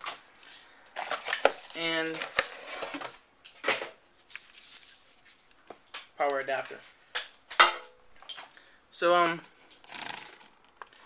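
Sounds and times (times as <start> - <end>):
cardboard and paper rustling: 1.0 - 3.2, 4.2 - 5.7.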